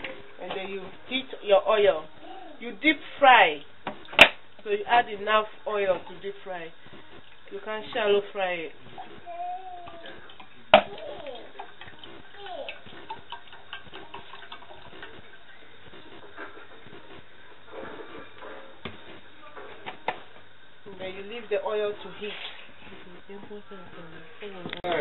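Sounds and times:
oil pouring into a saucepan: 0:10.2 - 0:15.8.

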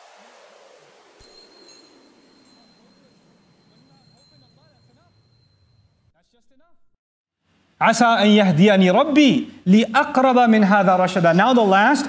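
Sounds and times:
high chime tinkles: 0:01.2 - 0:05.9
steady high ring: 0:01.2 - 0:06.1.

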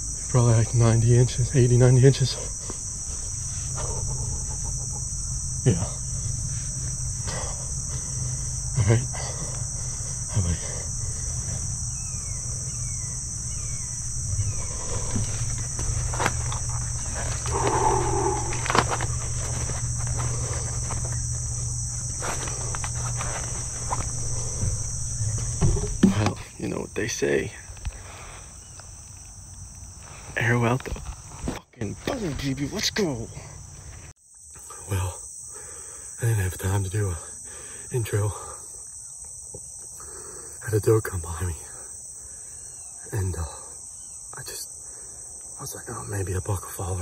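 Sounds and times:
insects chirring: 0:00.0 - 0:47.0
knocks and rustles: 0:22.2 - 0:26.4.

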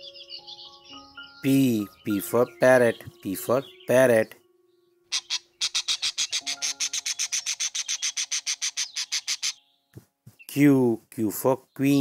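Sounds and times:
parrot chirping: 0:05.1 - 0:09.7.

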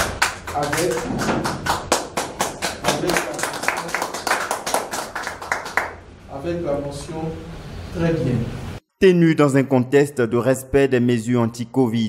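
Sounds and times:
audience clapping: 0:00.0 - 0:06.0.

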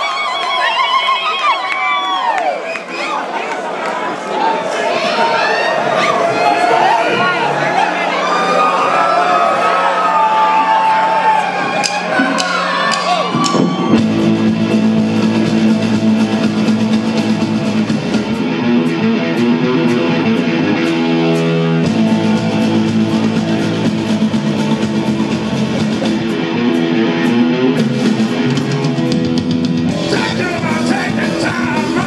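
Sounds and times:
rock band playing instrumental: 0:11.5 - 0:32.0.

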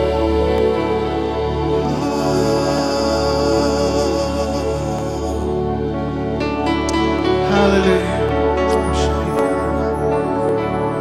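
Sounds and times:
sustained keyboard chords: 0:00.0 - 0:11.0
worship band music: 0:00.0 - 0:11.0.

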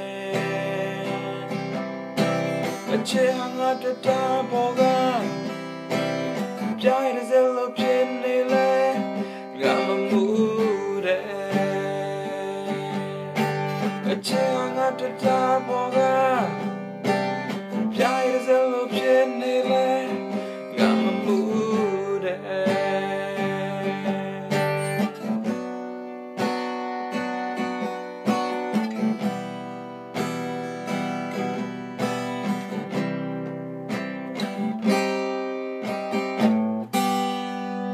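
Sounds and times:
man singing: 0:00.0 - 0:25.4
acoustic guitar strumming: 0:00.0 - 0:37.9.

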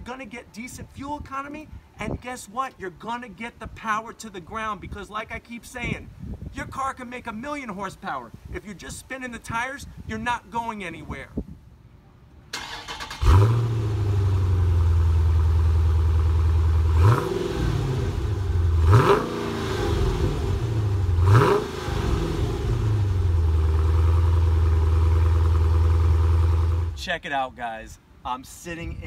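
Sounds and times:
car engine starting: 0:12.5 - 0:27.0
car engine idling and revving: 0:13.1 - 0:27.0.

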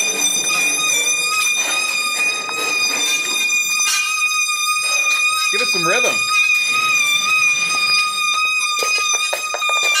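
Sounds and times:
wheelbarrow squealing: 0:00.0 - 0:10.0.

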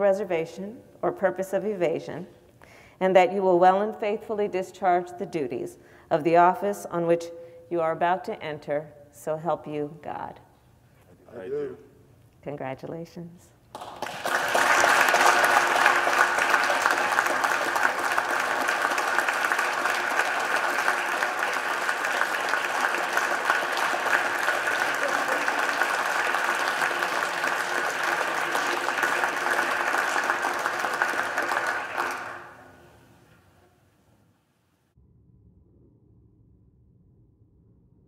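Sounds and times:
roomful of people applauding: 0:13.7 - 0:33.0.

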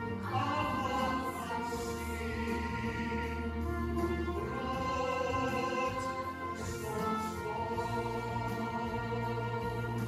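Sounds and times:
music with choir-like voices: 0:00.0 - 0:10.0.

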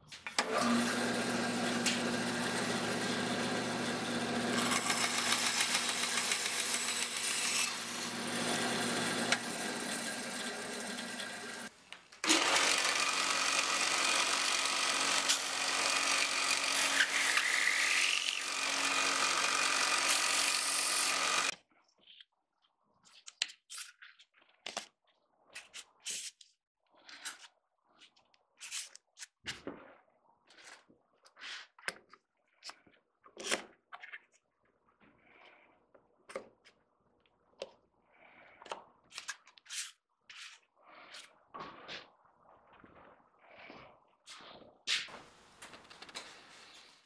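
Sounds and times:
electric power tool motor humming: 0:00.4 - 0:21.5.

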